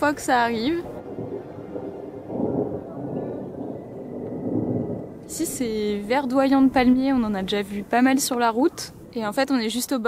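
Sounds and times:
distant thunder rumbling: 0.0 - 10.0.

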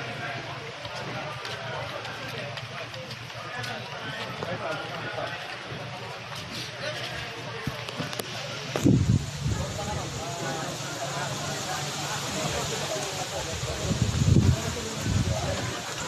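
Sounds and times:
footsteps on concrete: 0.0 - 9.0
people talking at once: 0.0 - 16.0.

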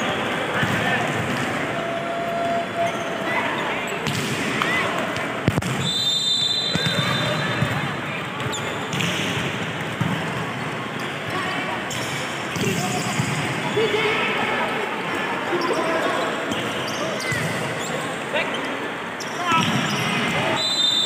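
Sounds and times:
volleyball struck by hands: 4.0 - 5.9.

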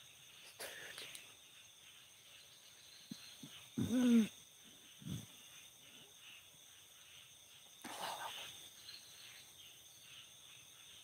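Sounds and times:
crickets and insects chirping: 0.0 - 11.0.

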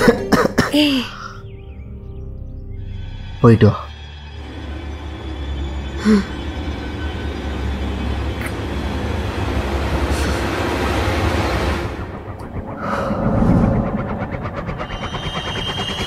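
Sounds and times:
dramatic background score: 0.0 - 16.0
low rumbling drone: 0.0 - 16.0.

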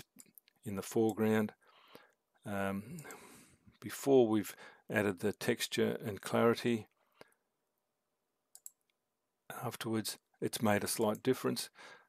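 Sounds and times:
faint computer mouse clicks: 8.5 - 9.0.

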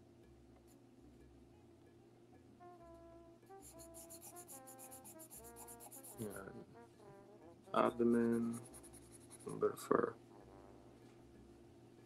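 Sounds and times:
soft background music: 0.0 - 12.0
pencil scratching on paper: 3.5 - 6.4, 7.8 - 9.8.

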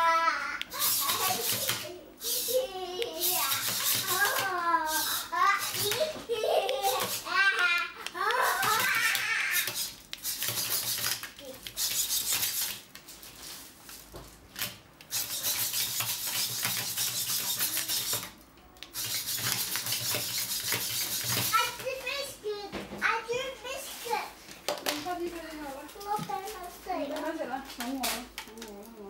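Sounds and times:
child's voice: 0.0 - 9.7, 11.4 - 11.7, 21.4 - 25.1, 25.9 - 29.0
robot servo motors whirring: 0.7 - 6.0, 15.1 - 18.3, 18.9 - 21.4.

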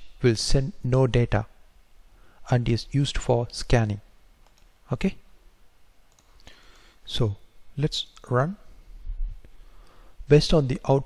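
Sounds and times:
man speaking: 0.2 - 1.5, 2.5 - 4.0, 4.9 - 5.2, 7.1 - 8.7, 10.3 - 11.0
faint clicks: 4.4 - 4.7, 6.1 - 7.0.

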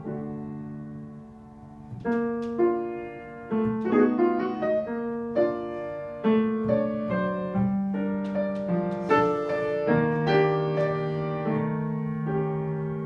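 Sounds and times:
piano slow melody: 0.0 - 13.0.

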